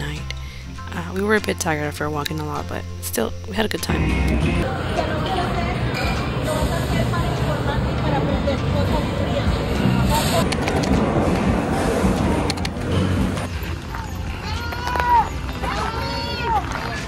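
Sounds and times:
music: 0:00.0 - 0:17.0
crowd chatter: 0:04.6 - 0:17.0.

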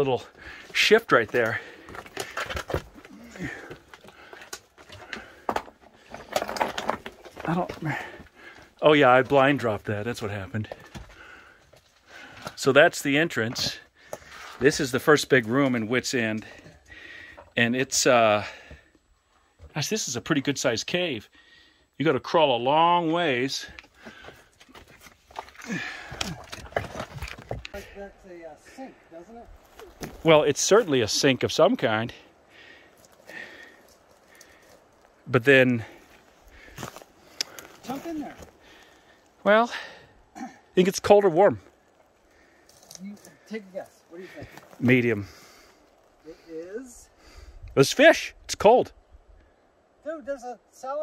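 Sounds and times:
knocks and scrapes on rock: 0:01.2 - 0:08.2, 0:26.1 - 0:27.8.

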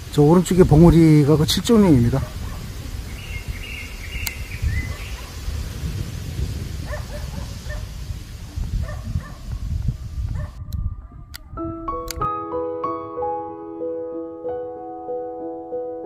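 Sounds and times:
wind buffeting microphone: 0:00.0 - 0:12.3
soft piano music: 0:10.8 - 0:16.0.

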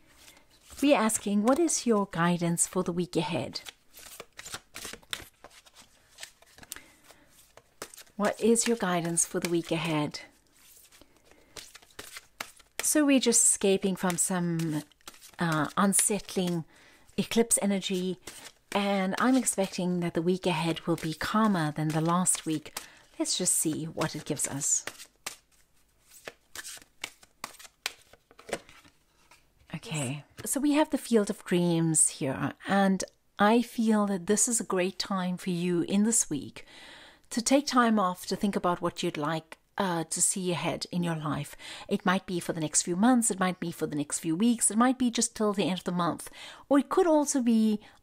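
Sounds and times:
cards being shuffled: 0:00.1 - 0:02.8, 0:03.5 - 0:29.5.

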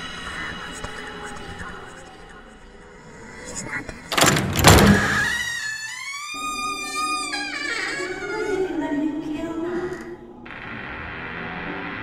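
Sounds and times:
door creaking open: 0:04.1 - 0:08.8.

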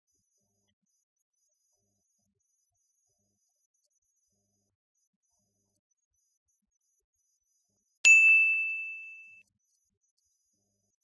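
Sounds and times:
bell-like ding: 0:08.1 - 0:09.4.

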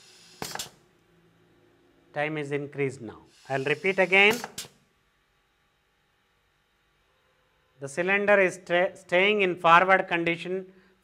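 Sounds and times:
compressed air hiss with knock: 0:00.0 - 0:00.8, 0:03.7 - 0:04.8.

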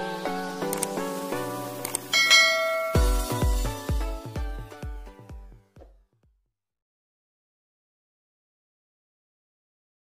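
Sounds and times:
bell-like notification chime: 0:02.2 - 0:03.4
electronic music with bass drum: 0:02.3 - 0:04.2.

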